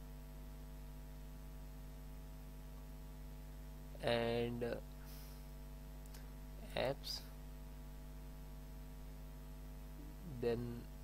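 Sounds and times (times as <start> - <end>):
mains hum: 0.0 - 11.0.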